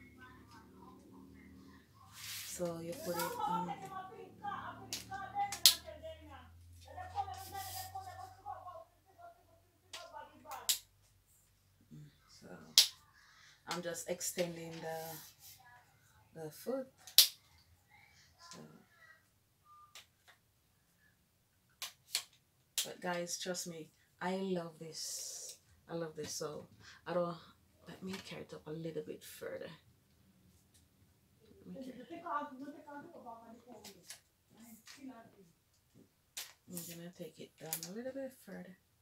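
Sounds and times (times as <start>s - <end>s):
background voices: 0.0s - 10.7s, 11.8s - 15.6s.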